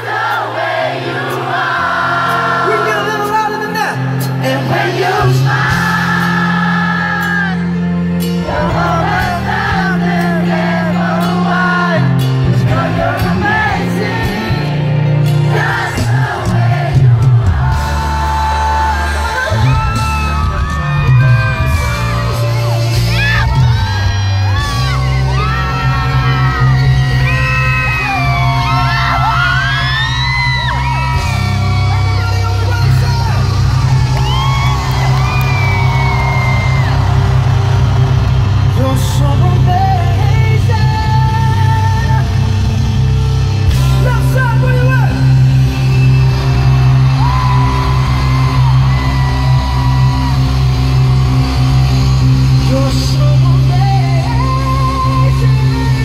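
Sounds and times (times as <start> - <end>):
crowd singing along: 0.0 - 3.3, 3.9 - 20.3
live pop band playing: 0.0 - 56.0
crowd whooping and shouting: 12.7 - 56.0.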